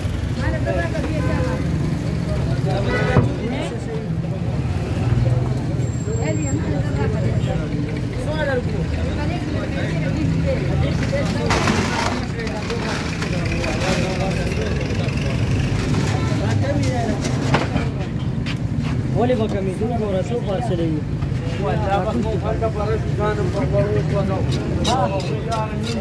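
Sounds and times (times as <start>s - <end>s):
people talking: 0.0s - 18.3s, 19.2s - 26.0s
traffic engine hum: 0.0s - 26.0s.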